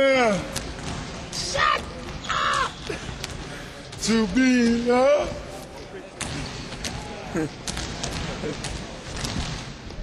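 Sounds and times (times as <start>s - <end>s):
people laughing and joking: 7.0s - 9.1s.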